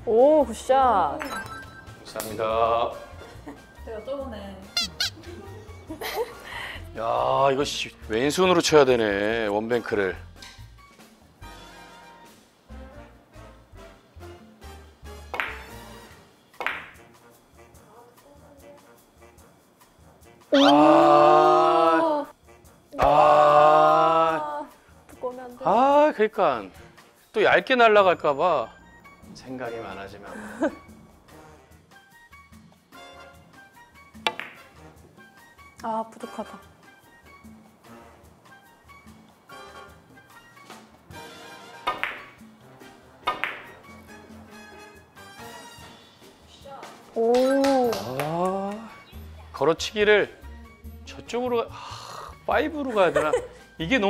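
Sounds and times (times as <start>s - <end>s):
background music with low notes: 0.0s - 54.0s
billiard balls clicking: 16.6s - 17.0s, 34.2s - 34.8s, 41.9s - 42.4s, 43.2s - 43.8s.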